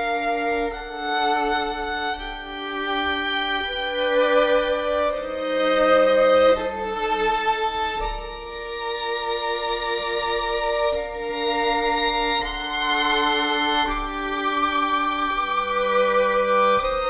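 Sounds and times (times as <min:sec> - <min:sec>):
violins playing sustained chords: 0:00.0 - 0:17.0.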